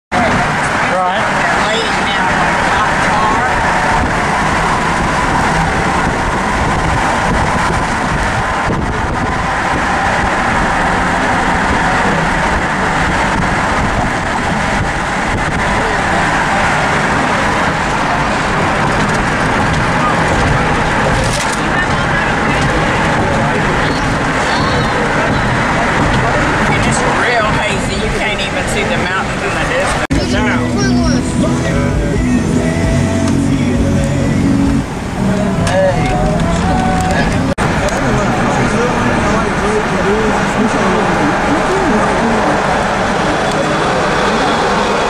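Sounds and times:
car road and wind noise: 0:00.1 - 0:45.0.

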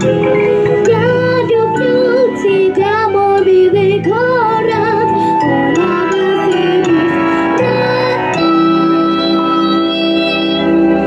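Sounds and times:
instrumental accompaniment: 0:00.0 - 0:11.0
girl singing: 0:00.7 - 0:11.0.

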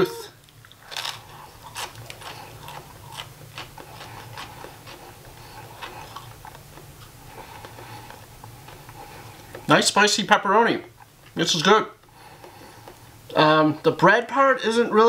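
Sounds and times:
low steady hum: 0:00.0 - 0:15.0
biting into crisp bread: 0:00.4 - 0:09.7
chewing with small crunches: 0:00.4 - 0:09.8, 0:10.8 - 0:11.4, 0:12.0 - 0:13.5.

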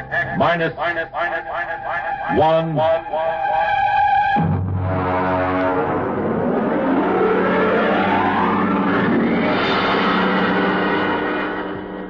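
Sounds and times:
radio drama theme music: 0:00.0 - 0:12.0
steady low notes: 0:00.0 - 0:12.0
rising swooping glide: 0:05.2 - 0:12.0.

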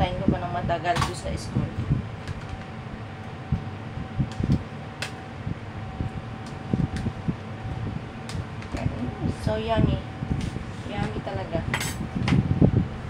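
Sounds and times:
exhaust fan humming: 0:00.0 - 0:13.0.

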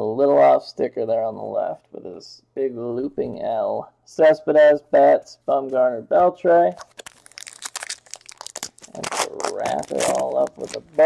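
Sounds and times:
cards being handled: 0:06.8 - 0:11.0
foil wrappers crinkling: 0:06.8 - 0:11.0.

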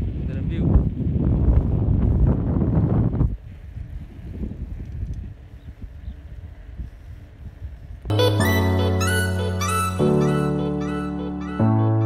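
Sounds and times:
wind buffeting microphone: 0:00.0 - 0:08.1.

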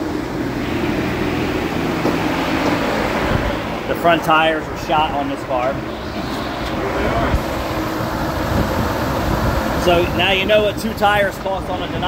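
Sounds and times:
machine hum: 0:00.0 - 0:12.0
rushing fan noise: 0:00.0 - 0:12.0.

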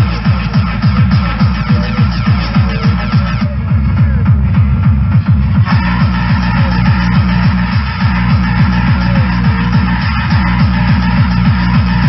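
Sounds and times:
loud tekno music: 0:00.0 - 0:12.0.

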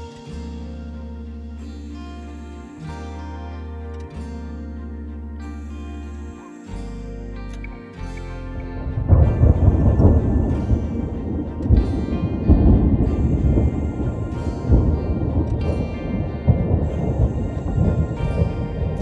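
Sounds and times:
soft background music: 0:00.0 - 0:19.0
thunder rumbling: 0:08.6 - 0:19.0.

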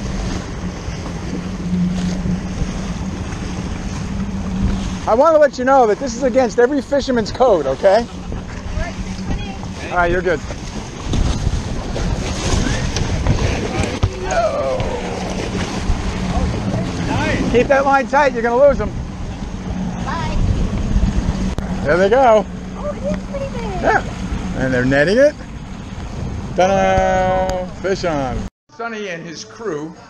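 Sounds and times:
water splashing: 0:00.0 - 0:28.5
wind buffeting microphone: 0:00.0 - 0:28.5
boat engine humming: 0:00.0 - 0:30.0
wind noise on microphone: 0:08.1 - 0:17.6, 0:18.8 - 0:21.9.

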